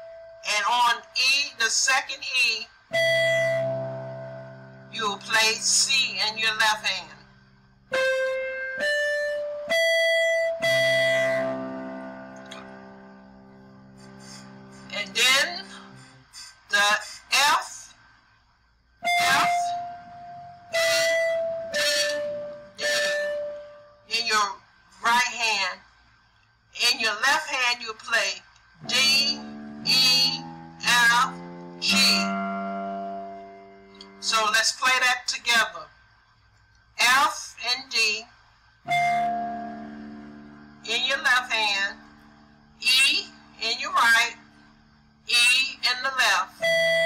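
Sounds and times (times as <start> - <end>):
electronic keyboard piano chord: 2.9 - 6.5, 7.9 - 16.2, 19.0 - 24.2, 28.8 - 34.6, 38.9 - 44.5.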